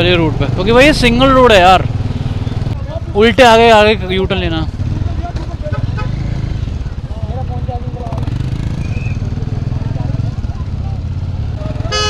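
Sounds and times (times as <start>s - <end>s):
motorcycle engine idling: 2.1s - 8.3s.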